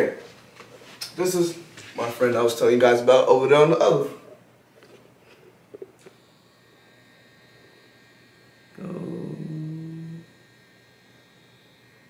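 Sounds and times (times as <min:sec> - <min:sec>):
person humming low note: 0:08.6 - 0:10.6.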